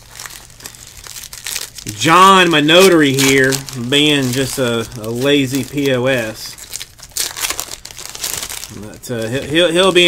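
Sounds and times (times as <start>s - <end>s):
foil wrapper crinkling: 0.0s - 10.0s.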